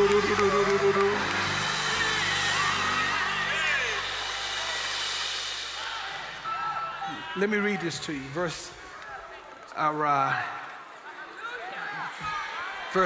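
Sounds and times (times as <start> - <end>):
congregation shouting: 0.0 - 9.2.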